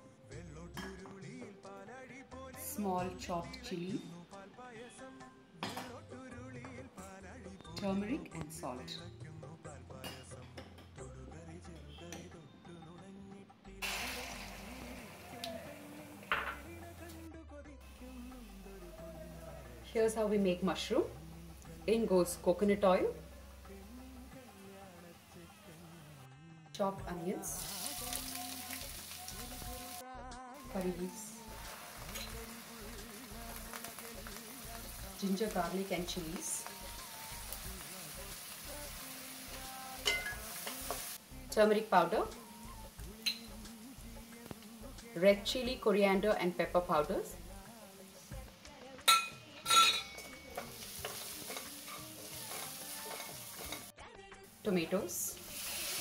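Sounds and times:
onions sizzling in hot oil: 13.8 - 16.6, 27.4 - 30.0, 30.7 - 44.7, 45.5 - 56.0.

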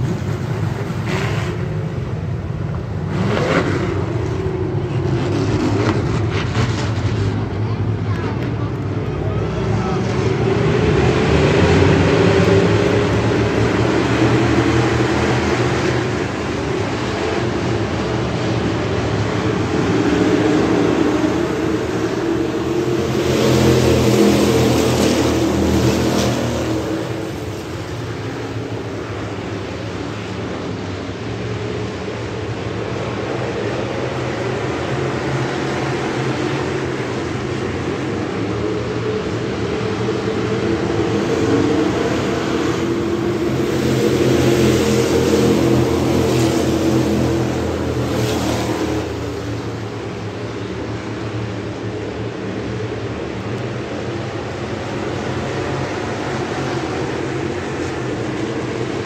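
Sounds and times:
stock car engines passing: 0.0 - 59.0.

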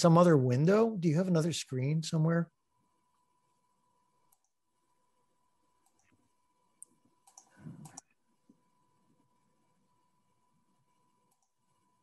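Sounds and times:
faint steady tone: 1.0 - 12.0
faint computer mouse clicks: 4.3 - 4.6, 5.8 - 6.2, 6.8 - 8.2, 11.3 - 11.6.

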